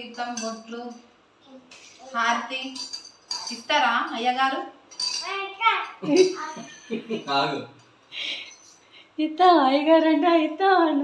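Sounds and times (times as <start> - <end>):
metal utensils clinking: 0.0 - 0.8, 2.6 - 4.0, 4.9 - 6.4.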